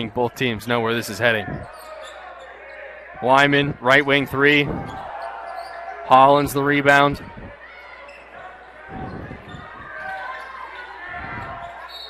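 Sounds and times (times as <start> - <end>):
crowd murmur: 0.0 - 12.0
sneakers squeaking: 1.5 - 2.9, 4.7 - 6.0, 7.7 - 12.0.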